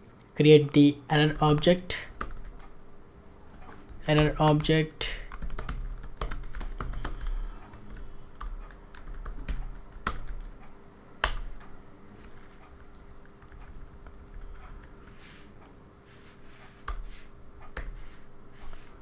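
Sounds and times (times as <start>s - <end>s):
typing on computer keyboard: 1.2s - 2.7s, 3.7s - 15.0s.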